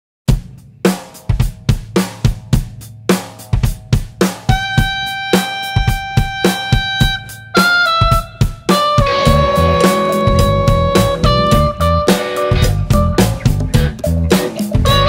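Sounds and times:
drum kit beat: 0.3 - 15.0
rock band playing: 0.3 - 15.0
sustained electric guitar notes: 4.5 - 15.0.

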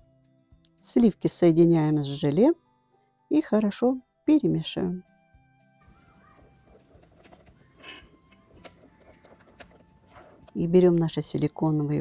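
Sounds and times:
spatula scraping and stirring: 6.6 - 10.5.

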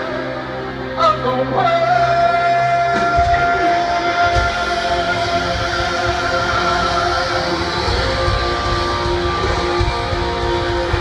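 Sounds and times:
live rock band playing loudly: 0.0 - 11.0.

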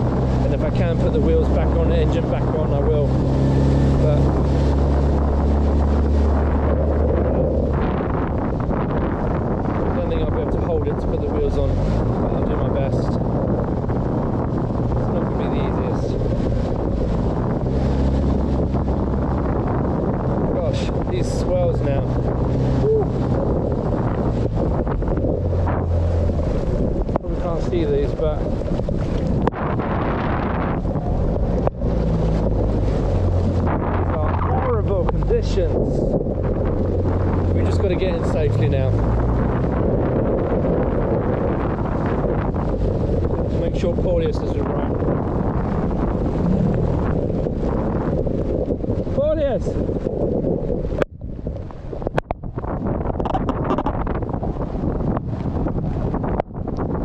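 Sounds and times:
outboard motor droning: 0.0 - 57.0
wind buffeting microphone: 0.0 - 57.0.

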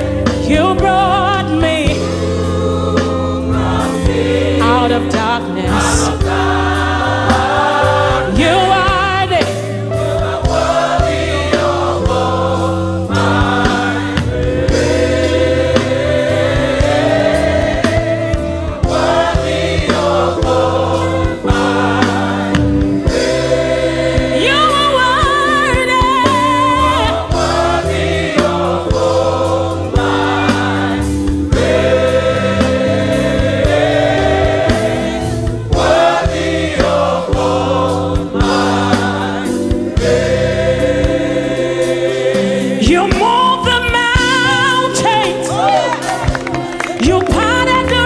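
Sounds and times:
backing band bass and chords: 0.0 - 48.0
women's choir singing: 0.0 - 48.0
woman soloist singing: 24.4 - 27.3.

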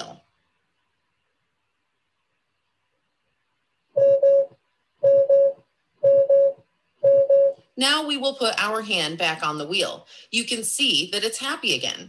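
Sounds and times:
car warning double beep: 4.0 - 7.6.

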